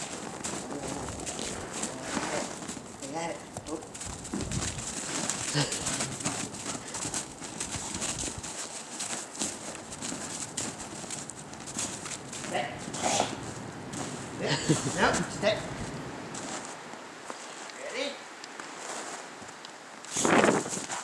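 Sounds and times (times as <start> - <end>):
footsteps crunching in snow: 0.0 - 17.7, 18.6 - 21.0.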